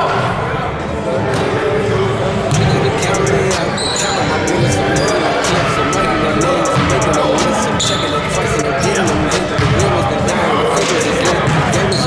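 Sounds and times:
players' voices echoing: 0.0 - 12.0
basketball bouncing: 2.5 - 3.1, 8.9 - 12.0
sneaker squeaks: 2.5 - 12.0.

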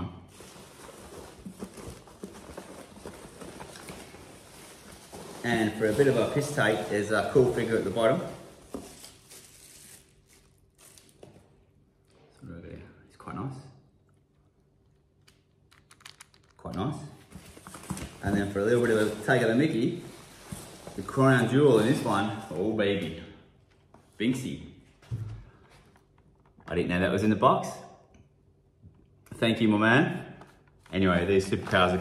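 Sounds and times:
hands rummaging in cardboard box: 0.3 - 9.1
packing crinkling and rustling: 0.3 - 11.4, 17.3 - 22.7.

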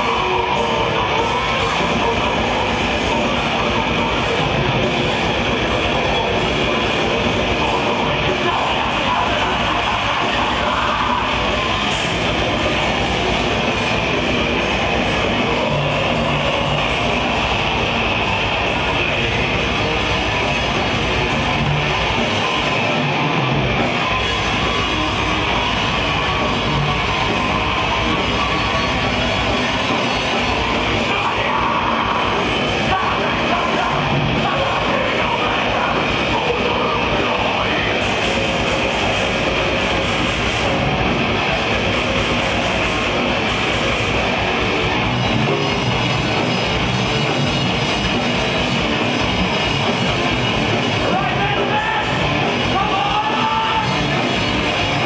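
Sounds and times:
death metal band playing live: 0.0 - 55.0
distorted electric guitars: 0.0 - 55.0
fast drumming: 0.0 - 55.0.

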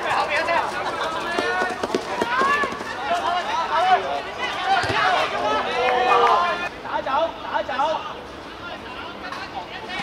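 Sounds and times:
players shouting: 0.0 - 6.8.

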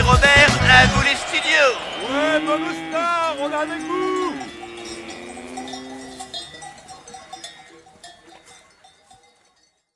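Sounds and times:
bell-like clinking and twinkling: 3.6 - 9.9.

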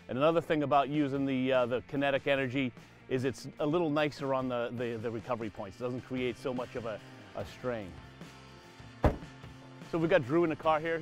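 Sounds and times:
quiet background music: 0.0 - 11.0
liftgate slamming shut: 9.0 - 9.4.

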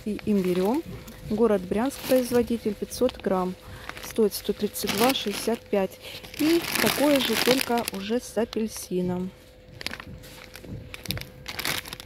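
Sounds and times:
faint steady hum: 0.0 - 12.0
plastic bag crinkling: 0.0 - 12.0.

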